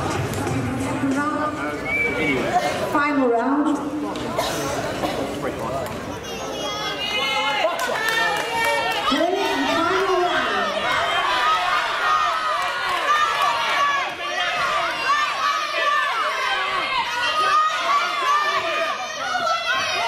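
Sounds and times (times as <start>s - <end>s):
crowd shouting and cheering: 0.0s - 20.0s.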